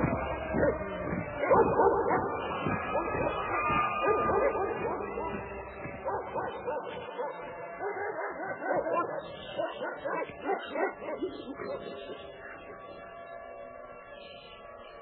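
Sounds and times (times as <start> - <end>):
music: 0.0 - 15.0
dogs barking and yelping: 0.4 - 12.2.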